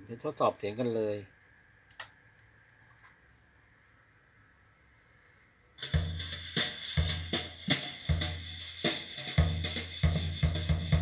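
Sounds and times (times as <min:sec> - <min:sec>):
music with drum kit over loudspeakers: 0:05.8 - 0:11.0.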